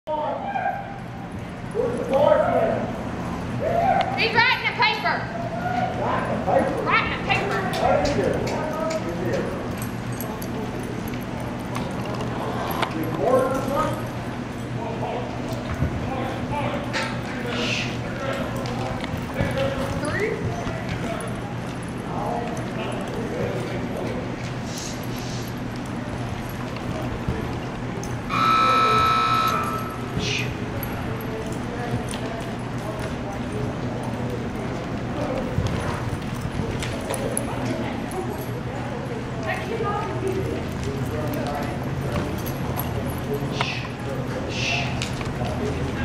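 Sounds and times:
electric buzzer tone: 28.3s - 30.2s.

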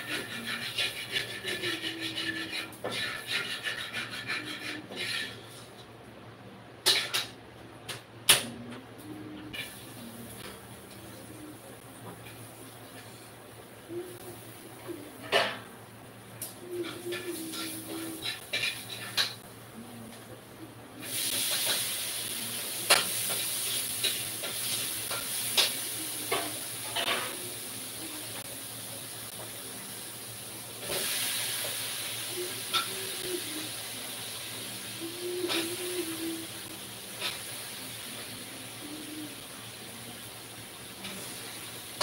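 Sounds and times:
steady hiss: 20.9s - 42.0s.

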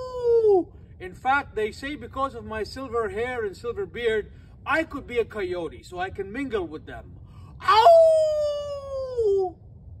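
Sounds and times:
man howling like a coyote: 0.0s - 0.7s, 7.6s - 9.6s.

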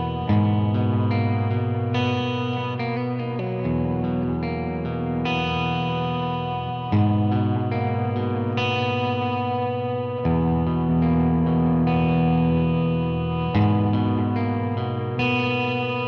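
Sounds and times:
electric guitar ringing chords: 0.0s - 16.0s.

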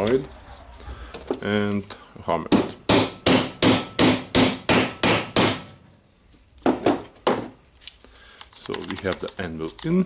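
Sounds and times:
hammer knocking on metal: 2.5s - 5.7s.

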